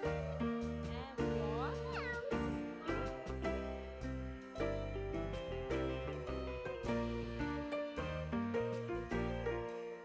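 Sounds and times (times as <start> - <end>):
upbeat children's music: 0.0 - 10.0.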